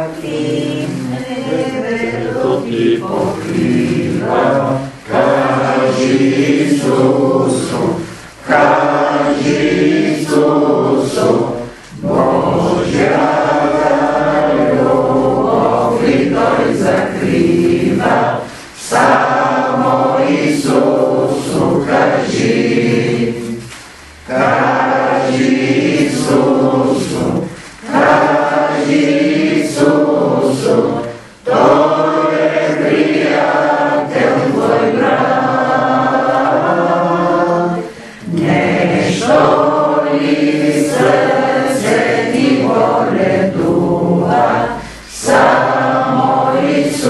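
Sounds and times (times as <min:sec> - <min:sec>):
group singing a hymn: 0:00.0 - 0:47.0.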